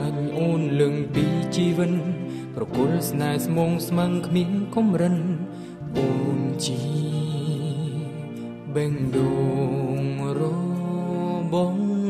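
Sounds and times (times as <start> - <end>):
man singing pop song: 0.0 - 12.0.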